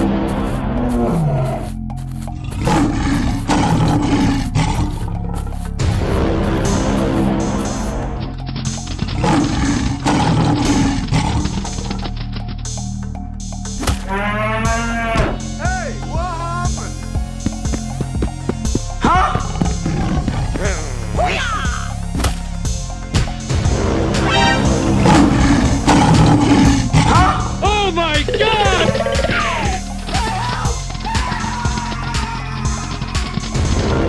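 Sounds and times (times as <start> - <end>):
background music: 0.0 - 34.0
lion roar: 2.4 - 5.4, 9.0 - 12.0, 24.8 - 27.4.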